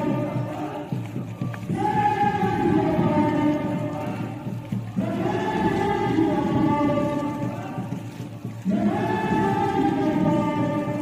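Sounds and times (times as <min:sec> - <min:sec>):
voices singing long held notes: 0:00.0 - 0:11.0.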